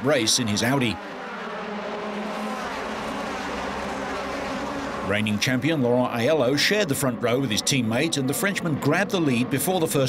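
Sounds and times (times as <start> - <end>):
racing car engines accelerating: 0.0 - 10.0.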